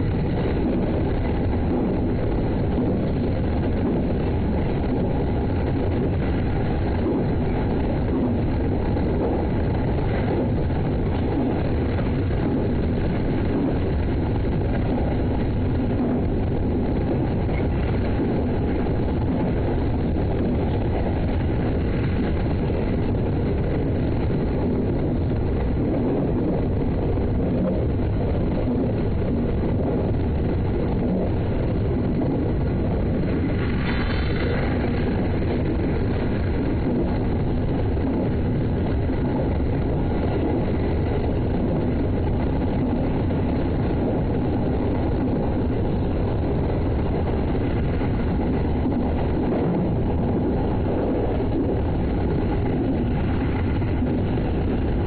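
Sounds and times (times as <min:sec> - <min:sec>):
electric train rumbling on rails: 0:00.0 - 0:55.0.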